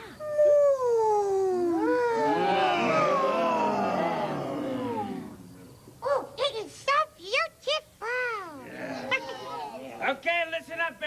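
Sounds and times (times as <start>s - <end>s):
monster voices calling together: 1.8s - 5.6s, 8.6s - 9.8s.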